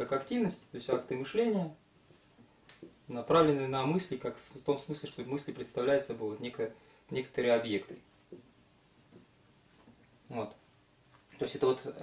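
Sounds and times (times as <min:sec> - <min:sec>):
marker writing on whiteboard: 0:02.0 - 0:03.4, 0:07.8 - 0:10.0.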